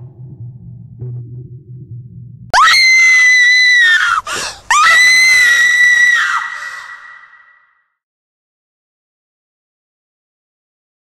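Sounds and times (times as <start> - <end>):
woman screaming: 2.6 - 7.6
sharp gasping breath: 4.2 - 4.7, 6.5 - 7.0.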